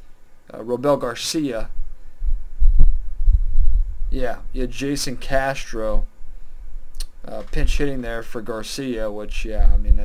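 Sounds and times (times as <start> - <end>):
rumbling and thumping on microphone: 1.7 - 6.0, 6.7 - 8.6, 9.2 - 10.0
faint click: 6.9 - 7.6.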